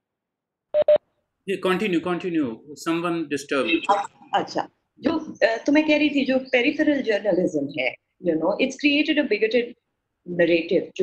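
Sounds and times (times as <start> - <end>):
person speaking: 1.5 - 5.4
short electronic beeps: 3.6 - 4.1.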